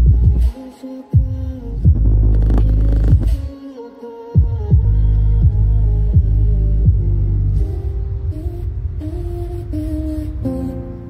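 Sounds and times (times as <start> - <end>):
bass-heavy music on a speaker: 0.0 - 8.2.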